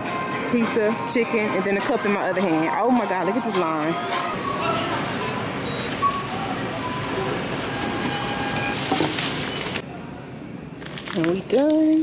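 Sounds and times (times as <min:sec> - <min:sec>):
murmur of distant voices: 0:00.0 - 0:08.1.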